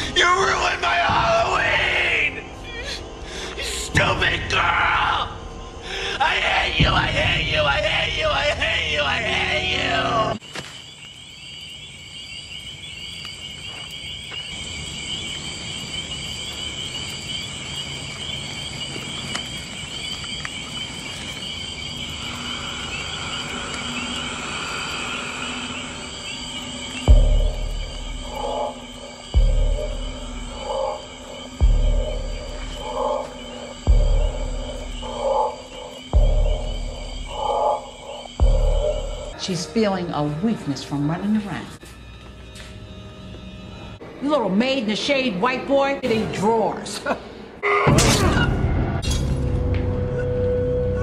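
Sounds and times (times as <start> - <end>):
insects chirring: 0.0 - 51.0
dark music with heavy pulse: 24.8 - 39.4.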